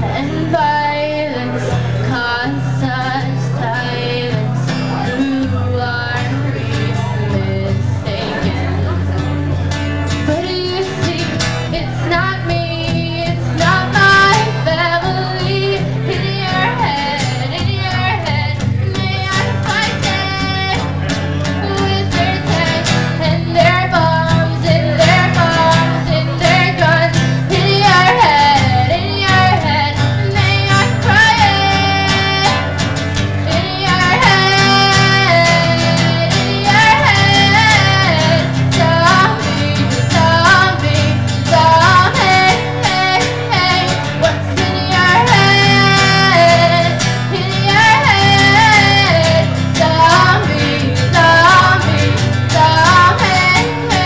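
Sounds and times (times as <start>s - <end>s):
acoustic guitar strumming: 0.0s - 54.0s
woman singing into a microphone: 0.0s - 54.0s.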